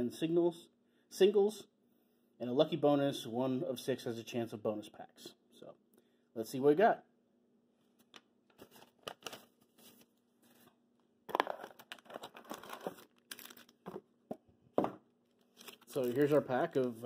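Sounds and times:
foil wrappers crinkling: 8.6 - 10.1, 11.3 - 14.0, 15.4 - 17.0.

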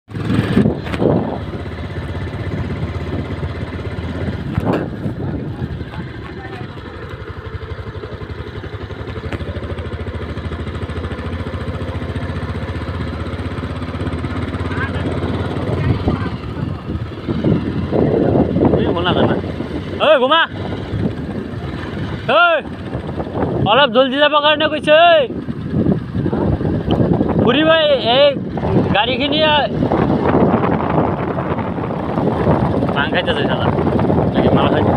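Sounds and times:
road and wind noise: 0.0 - 34.9
motorcycle engine running: 0.1 - 34.9.

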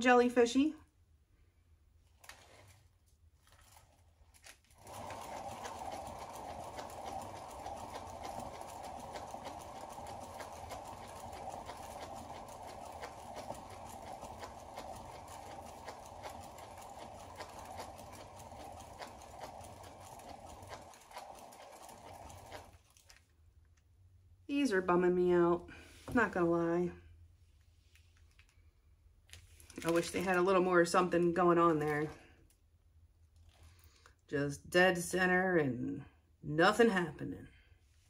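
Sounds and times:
turntable rumbling whir: 4.7 - 23.1.

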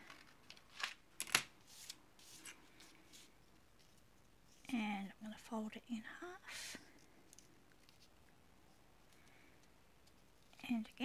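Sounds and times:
paper rustling: 0.0 - 4.7, 6.9 - 8.3.

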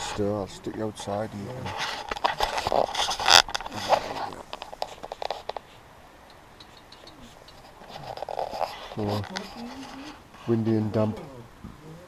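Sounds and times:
tent fabric rustling: 1.6 - 5.8
sharp clicks and scrapes: 1.7 - 5.8, 6.6 - 10.2.

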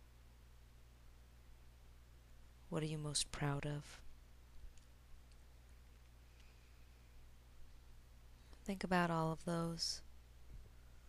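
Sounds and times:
faint low hum: 0.0 - 11.0
soft clicks: 4.7 - 6.6.

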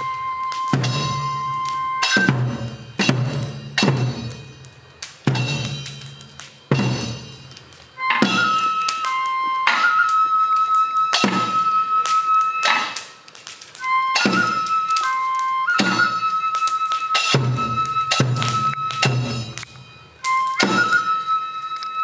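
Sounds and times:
bamboo flute long notes: 0.0 - 3.6, 5.9 - 22.0
metallic percussion ringing: 0.0 - 9.1, 16.1 - 21.1.

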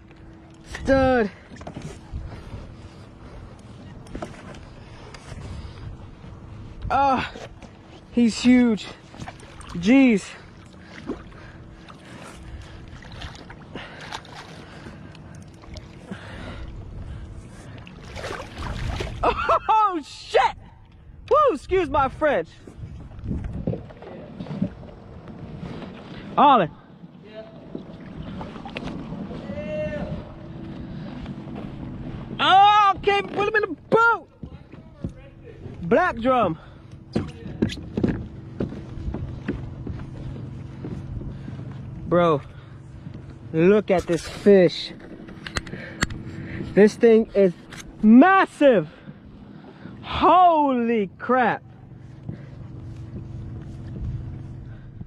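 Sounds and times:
low rumble of wind and water: 0.0 - 55.0
steady low hum: 0.0 - 55.0
fish splashing at water surface: 17.9 - 19.3.

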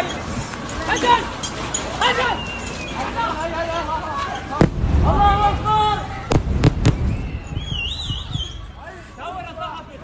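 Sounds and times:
people's voices in street: 0.0 - 10.0
explosions with low rumble: 4.6 - 8.7.

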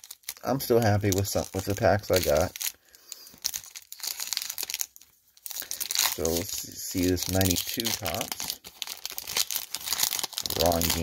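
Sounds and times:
card pack wrapper crinkling: 0.0 - 11.0.

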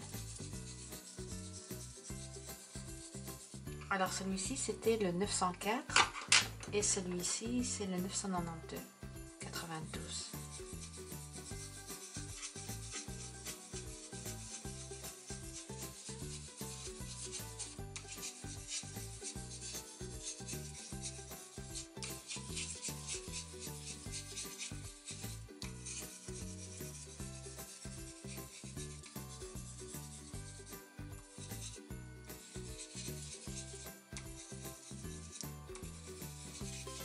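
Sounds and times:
pencil scratching on paper: 0.0 - 4.8, 8.2 - 37.0.

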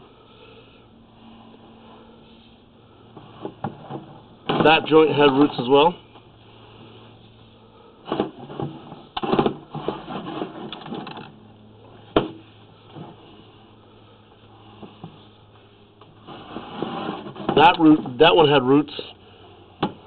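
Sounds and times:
low electrical hum: 0.0 - 20.0
cable rattling and scraping: 3.1 - 6.0, 8.0 - 11.4, 16.0 - 18.4.

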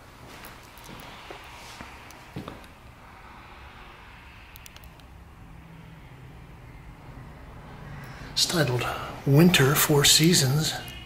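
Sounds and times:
steady low rumble: 0.0 - 11.0
faint clicks: 4.5 - 5.1.

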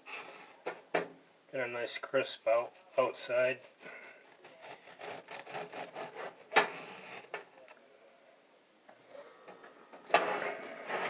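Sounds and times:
knife sawing through crusty bread: 3.7 - 7.3.

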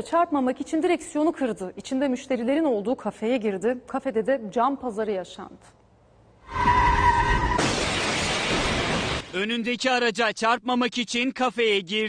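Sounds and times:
tire squeal: 6.4 - 7.7
car crashing through furniture: 7.1 - 9.3.

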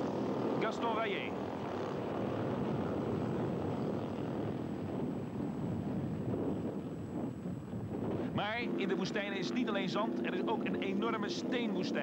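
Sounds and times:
motorcycle engines droning: 0.0 - 12.0.

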